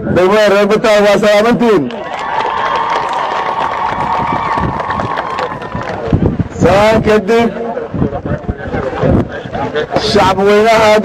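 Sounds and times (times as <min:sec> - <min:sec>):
crowd cheering and shouting: 0:01.9 - 0:06.8.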